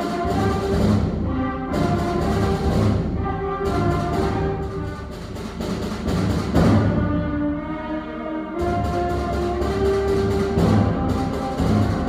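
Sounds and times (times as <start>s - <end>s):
percussion strikes: 0.0s - 7.2s, 8.6s - 12.0s
concert band playing: 0.0s - 12.0s.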